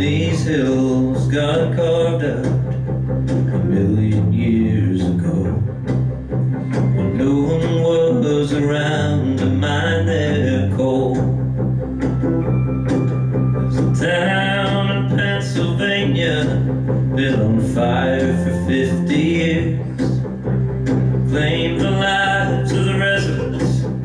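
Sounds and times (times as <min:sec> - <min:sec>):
man singing: 0:00.0 - 0:02.8, 0:03.4 - 0:05.8, 0:07.0 - 0:11.4, 0:13.6 - 0:20.3, 0:21.2 - 0:24.0
acoustic guitar strumming: 0:00.0 - 0:24.0
electric bass line: 0:00.0 - 0:24.0.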